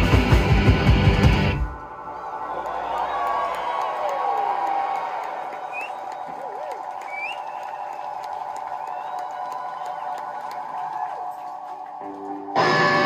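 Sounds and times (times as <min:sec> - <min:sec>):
electric guitar feedback drone: 0:11.3 - 0:13.0.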